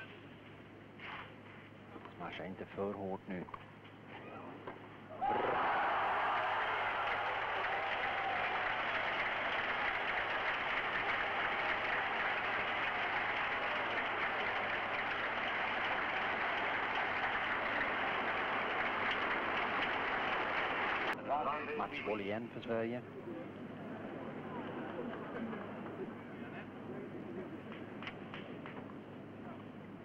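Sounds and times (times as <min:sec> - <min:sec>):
crowd applauding: 0:05.2 - 0:21.2.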